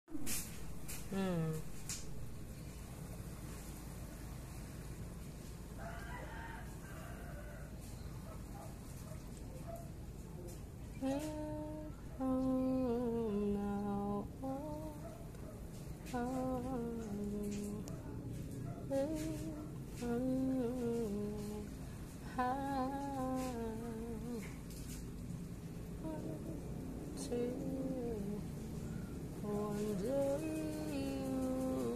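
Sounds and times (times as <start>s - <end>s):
person humming a slow tune: 0.1s - 2.4s, 10.9s - 15.2s, 16.1s - 18.2s, 18.9s - 24.6s, 25.9s - 31.9s
low background noise: 0.1s - 31.9s
rooster crowing: 5.8s - 8.1s.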